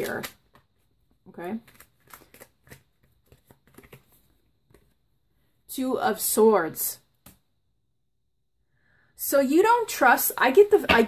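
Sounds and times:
cards shuffling: 0.0 - 0.9, 1.6 - 5.0.

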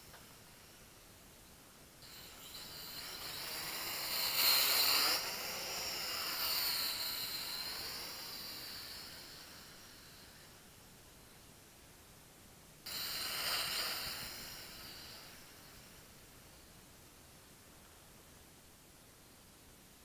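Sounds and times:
drone propellers buzzing: 2.0 - 10.6, 12.9 - 15.9.

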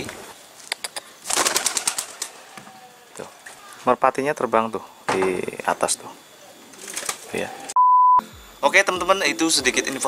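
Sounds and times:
pigeon wings flapping: 1.2 - 2.4, 6.7 - 7.3.

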